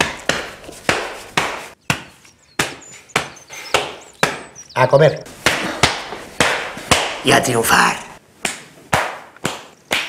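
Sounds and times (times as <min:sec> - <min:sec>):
open-hand slaps on neck: 0:05.4 - 0:07.2, 0:08.4 - 0:10.0.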